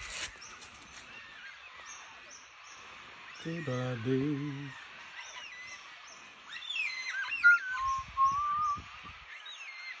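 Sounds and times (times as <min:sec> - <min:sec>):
songbirds singing: 0:00.0 - 0:10.0.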